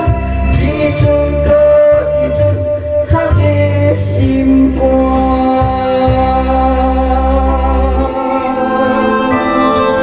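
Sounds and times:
man singing into microphone: 0.0 - 10.0.

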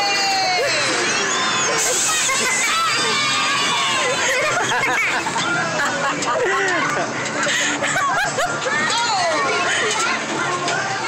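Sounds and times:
riders shouting and cheering: 0.0 - 10.8.

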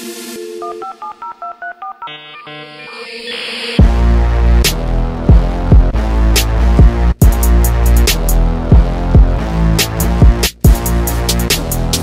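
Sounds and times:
telephone keypad dialing tones: 0.5 - 2.9.

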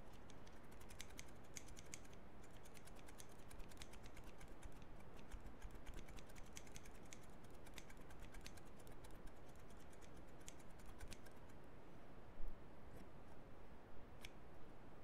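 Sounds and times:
scissors snipping: 0.0 - 11.4.

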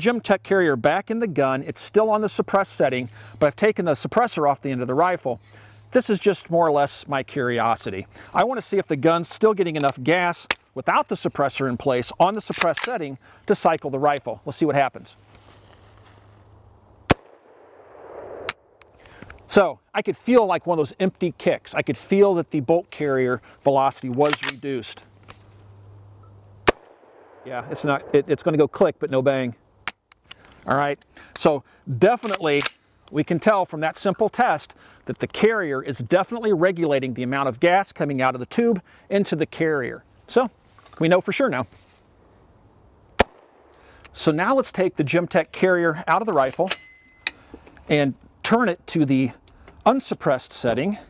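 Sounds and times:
rifle shot: 17.1 - 18.9, 26.6 - 28.6, 43.2 - 43.7.

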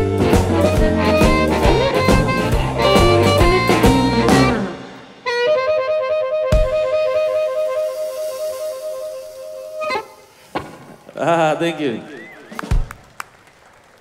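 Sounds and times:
amplified harmonica chord: 0.0 - 10.6
blues band playing: 0.0 - 13.0.

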